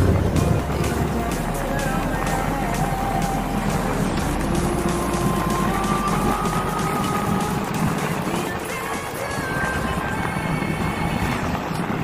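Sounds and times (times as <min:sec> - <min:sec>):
background music with held notes: 0:00.0 - 0:12.0
vehicle road rumble: 0:00.0 - 0:12.0.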